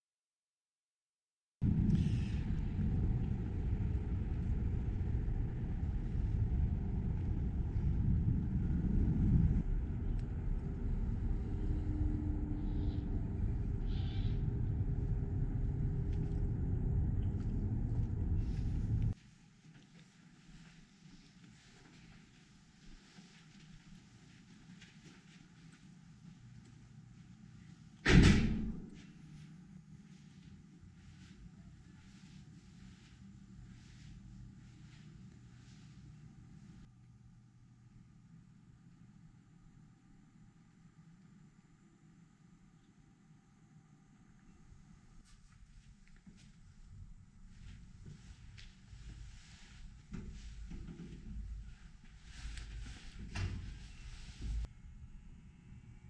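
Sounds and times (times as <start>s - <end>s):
low outdoor rumble: 1.6s - 19.4s, 20.6s - 56.0s
door swinging shut: 28.1s - 28.9s.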